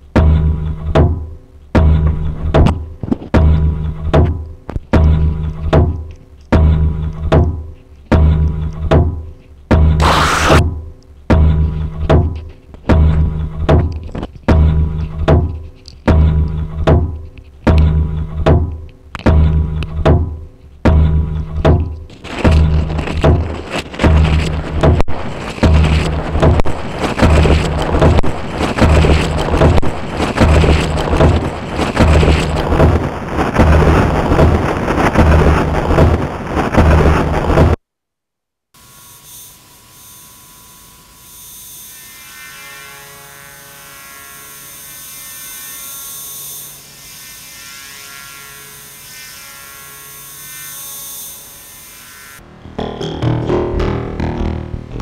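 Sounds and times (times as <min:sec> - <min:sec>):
loud noisy texture: 0:09.9 - 0:10.7, 0:22.1 - 0:37.8, 0:41.8 - 0:55.0
echoing pitched tones: 0:44.4 - 0:55.0.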